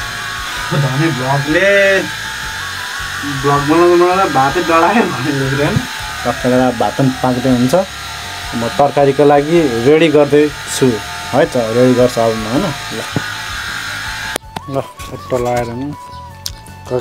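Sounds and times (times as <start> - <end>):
man talking: 0.7 - 2.1, 3.2 - 7.9, 8.5 - 13.2.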